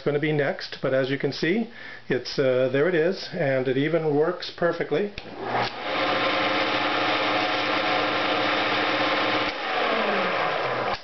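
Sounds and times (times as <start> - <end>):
sander motor whirring: 5.2 - 11.0.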